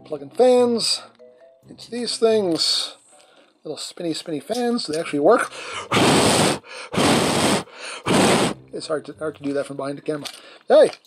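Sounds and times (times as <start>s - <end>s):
puffs of breath blown: 5.5s - 8.6s.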